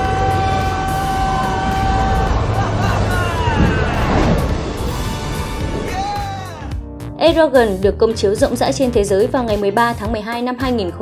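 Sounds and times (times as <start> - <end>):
low rumble: 0.0 - 7.2
falling swooping sounds: 1.4 - 6.7.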